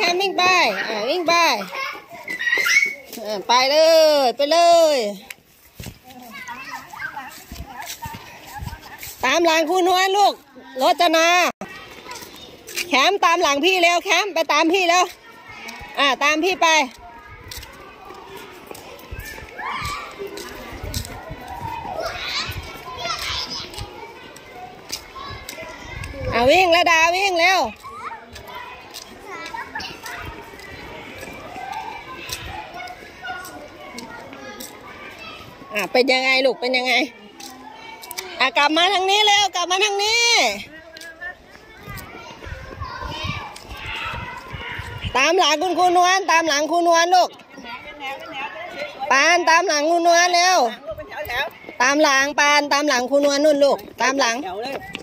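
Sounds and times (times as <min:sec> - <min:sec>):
children calling and chattering: 0:00.0 - 0:55.0.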